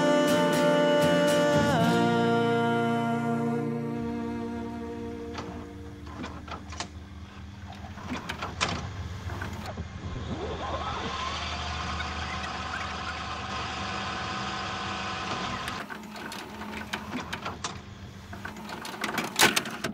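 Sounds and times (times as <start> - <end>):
tape rewinding mechanical whir: 3.7 - 19.9.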